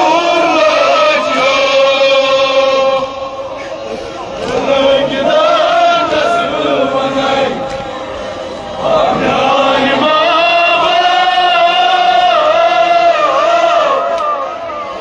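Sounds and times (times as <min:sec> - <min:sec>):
men chanting a lament: 0:00.0 - 0:15.0.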